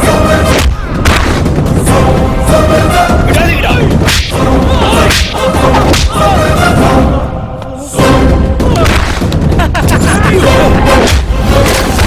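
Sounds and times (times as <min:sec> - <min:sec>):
loud background music: 0:00.0 - 0:12.0
swish and hit effects: 0:04.0 - 0:04.4.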